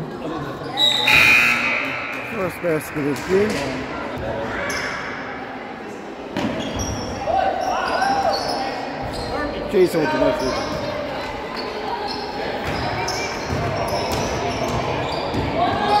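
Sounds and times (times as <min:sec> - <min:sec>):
sneaker squeaks: 0:00.6 - 0:02.2, 0:06.4 - 0:10.9, 0:11.5 - 0:16.0.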